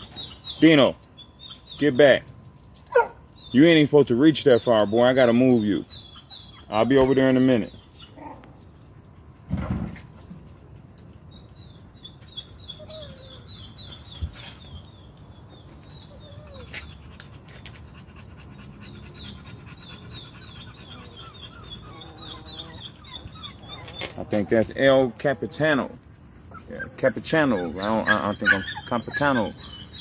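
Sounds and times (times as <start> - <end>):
puppies whimpering: 3.5 - 8.5, 11.4 - 30.0
dog panting: 12.8 - 30.0.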